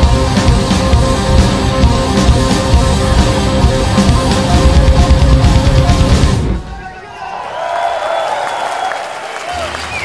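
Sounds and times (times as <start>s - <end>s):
crowd applauding and cheering: 6.6s - 10.0s.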